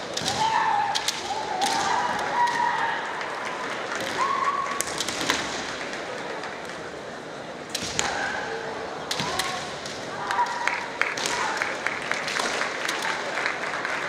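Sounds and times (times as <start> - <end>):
bamboo swords clacking: 0.0 - 2.8, 4.0 - 6.1, 7.7 - 13.2.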